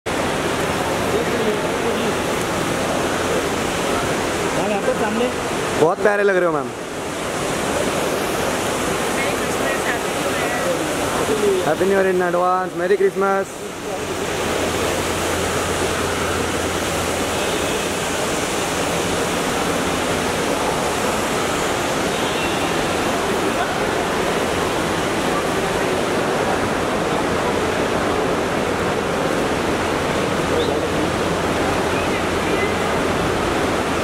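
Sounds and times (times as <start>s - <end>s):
rushing terminal hall noise: 6.0s - 34.0s.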